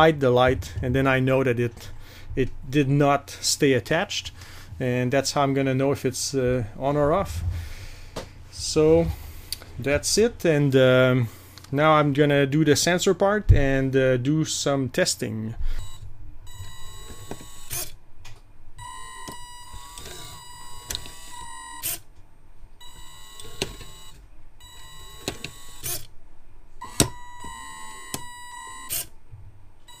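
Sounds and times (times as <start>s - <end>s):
electric motors whining: 16.5s - 17.9s, 19.2s - 22.0s, 22.9s - 26.1s, 26.8s - 29.1s.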